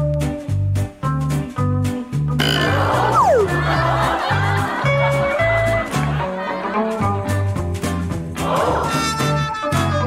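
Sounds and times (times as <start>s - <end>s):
cartoon background music: 0.2s - 10.0s
comic sound effect: 2.4s - 4.1s.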